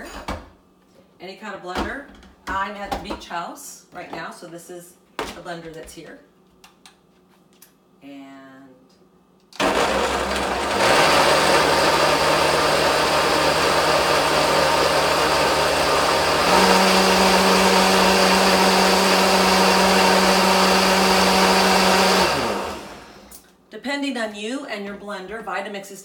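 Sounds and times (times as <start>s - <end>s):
blender motor running: 9.6s - 23.4s.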